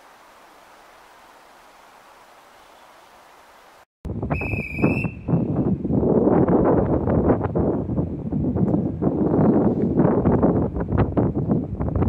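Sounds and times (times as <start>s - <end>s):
wind buffeting microphone: 4.1s - 12.0s
high-pitched whistle blow: 4.3s - 5.5s.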